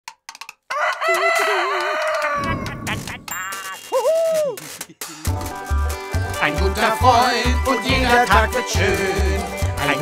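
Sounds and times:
rooster crowing: 0:00.7 - 0:02.9.

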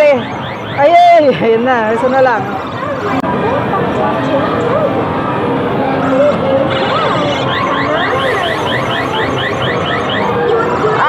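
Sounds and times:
arcade background noise: 0:00.0 - 0:11.0
claw machine rising chirps: 0:06.7 - 0:10.3.

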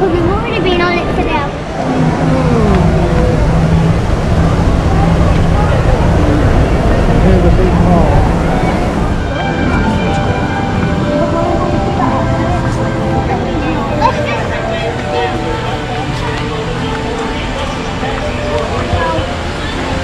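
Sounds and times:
monorail train passing: 0:00.0 - 0:20.0.

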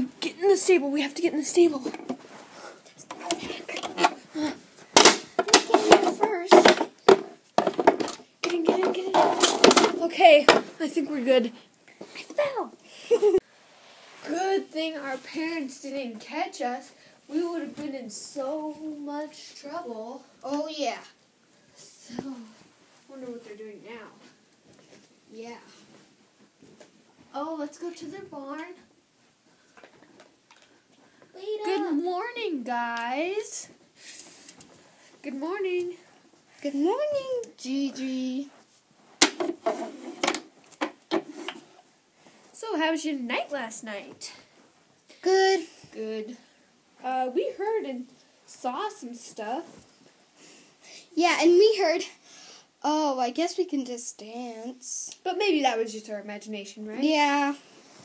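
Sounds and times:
plastic toys clacking on floor: 0:05.0 - 0:10.7
child's voice: 0:31.4 - 0:33.7, 0:45.1 - 0:46.4, 0:51.2 - 0:52.2, 0:52.8 - 0:57.6.

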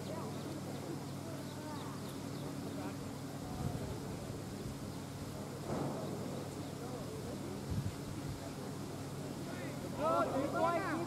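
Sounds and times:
faint distant talk: 0:00.0 - 0:11.0.

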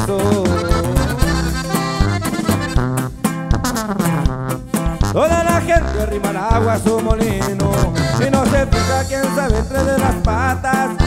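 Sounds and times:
accordion fill: 0:00.0 - 0:11.0
low bass notes: 0:00.0 - 0:11.0
steady beat: 0:00.0 - 0:11.0.

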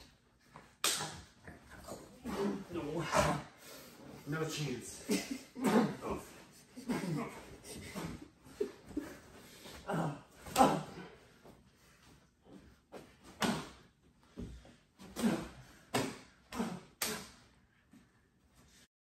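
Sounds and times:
smacks and thumps of blows: 0:00.6 - 0:01.4, 0:09.9 - 0:11.0, 0:13.2 - 0:17.4
short grunts: 0:00.9 - 0:11.3, 0:13.3 - 0:13.8, 0:15.0 - 0:17.5.

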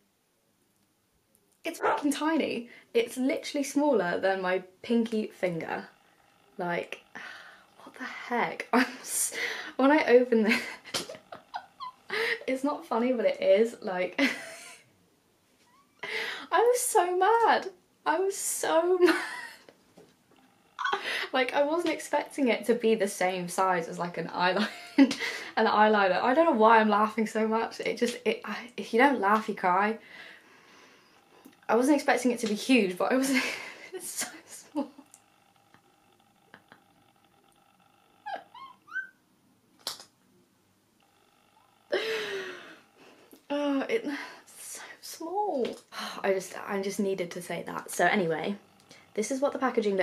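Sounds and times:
woman laughing breathily: 0:10.6 - 0:12.5, 0:20.8 - 0:21.3, 0:41.9 - 0:43.0
faint high squeak: 0:38.3 - 0:39.2.

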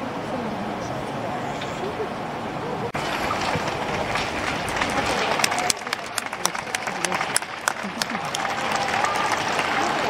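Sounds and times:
crowd voices: 0:00.0 - 0:10.0
crowd clapping: 0:03.0 - 0:10.0.

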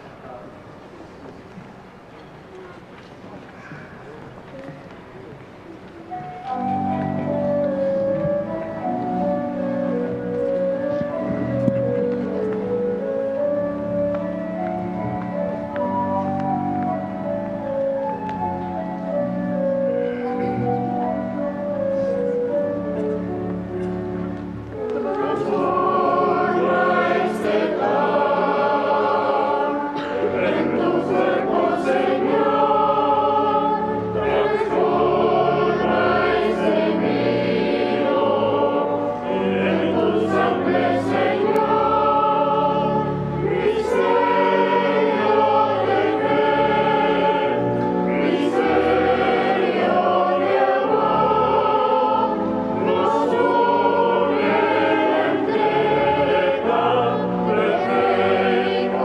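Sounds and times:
pipe organ: 0:04.1 - 0:59.0
choir singing a hymn: 0:06.1 - 0:59.0.

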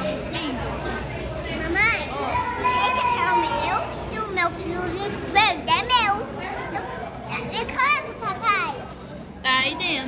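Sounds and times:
murmur of busy indoor space: 0:00.0 - 0:10.0.

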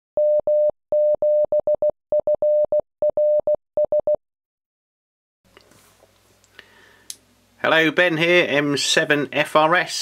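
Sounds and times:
morse code beeping tone: 0:00.2 - 0:04.2.

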